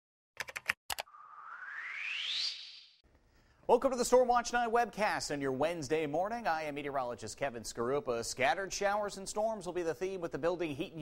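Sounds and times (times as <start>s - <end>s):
rising whoosh: 1.1s - 3.0s.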